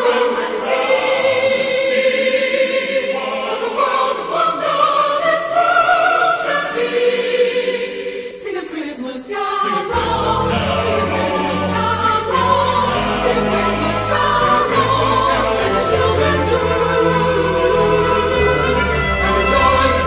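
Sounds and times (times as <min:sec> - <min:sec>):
choir singing: 0:00.0 - 0:20.0
orchestral accompaniment with bass: 0:09.9 - 0:20.0.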